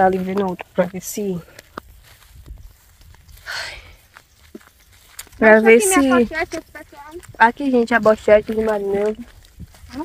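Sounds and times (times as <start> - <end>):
footsteps on grass: 0.0 - 10.0.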